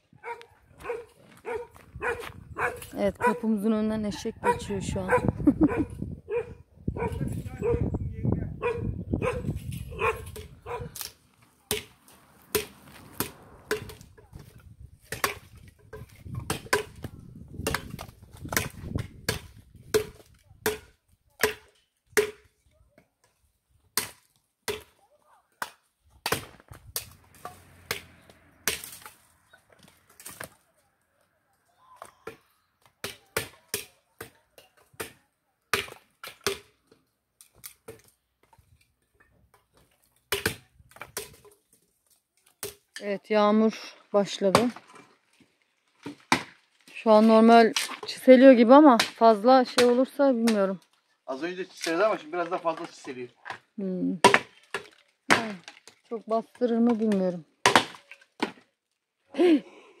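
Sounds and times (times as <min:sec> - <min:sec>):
hatchet chopping wood: 0:10.3 - 0:22.6, 0:23.9 - 0:25.0, 0:25.6 - 0:29.2, 0:33.0 - 0:36.8, 0:39.7 - 0:41.6, 0:42.6 - 0:42.9, 0:44.4 - 0:44.9, 0:46.0 - 0:46.6, 0:48.9 - 0:50.7, 0:54.2 - 0:55.9, 0:56.9 - 0:58.6.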